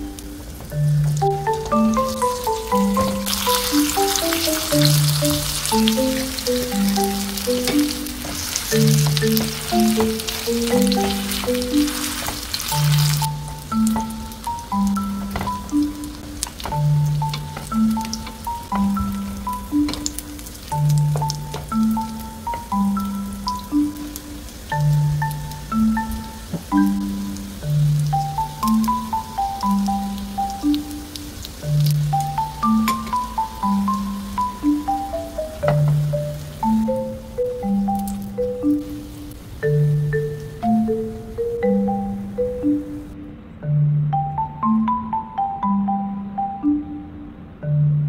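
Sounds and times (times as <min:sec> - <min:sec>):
background music melody: 0:00.0 - 0:48.0
potato slices sizzling in oil: 0:00.1 - 0:34.8.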